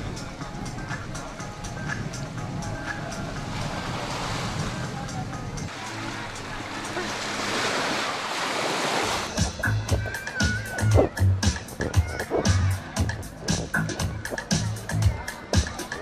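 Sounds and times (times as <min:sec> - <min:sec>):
waves washing onto shore: 0:00.0 - 0:12.5
faint background music: 0:00.0 - 0:16.0
voices: 0:00.0 - 0:16.0.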